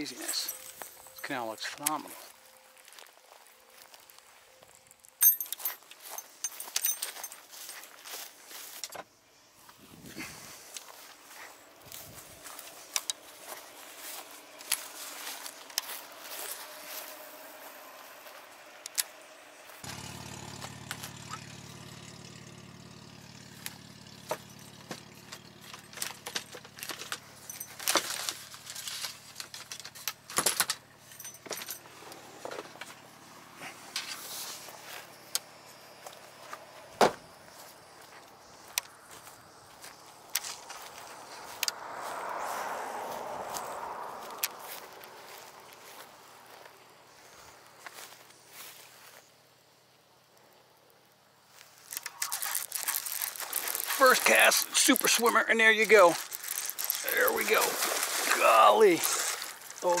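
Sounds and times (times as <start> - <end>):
gear clicking and rattling: 5.0 - 8.1, 19.8 - 33.0, 51.8 - 60.0
vehicle engine idling: 10.8 - 48.6.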